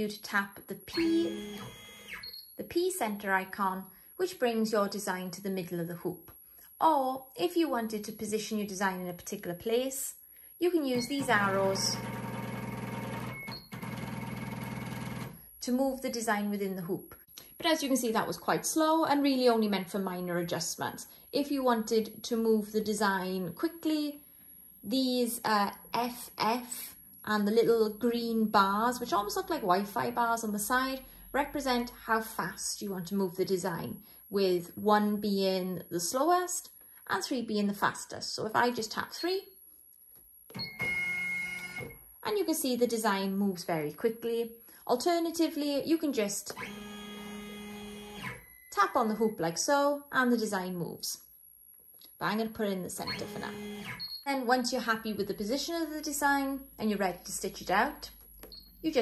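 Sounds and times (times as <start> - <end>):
embroidery machine motor whine: 1.0 - 2.3, 11.0 - 15.3, 53.1 - 54.0.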